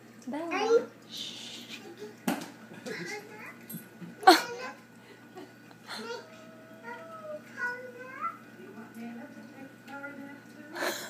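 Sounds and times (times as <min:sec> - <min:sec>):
small child whiny crying: 0:05.9 - 0:07.9.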